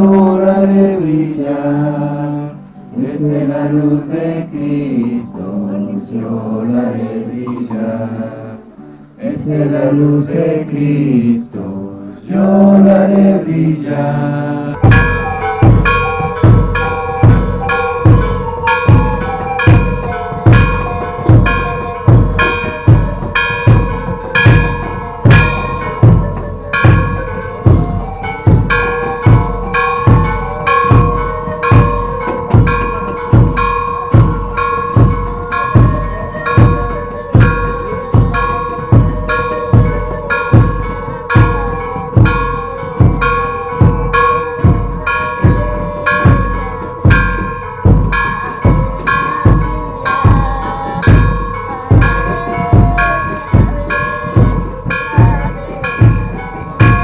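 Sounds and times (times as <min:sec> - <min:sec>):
drum beating steadily: 0:03.0 - 0:08.5, 0:14.7 - 0:57.0
held ringing tones: 0:14.8 - 0:57.0.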